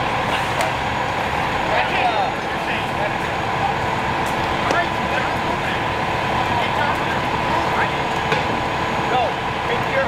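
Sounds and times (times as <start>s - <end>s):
fire engines running: 0.0s - 10.0s.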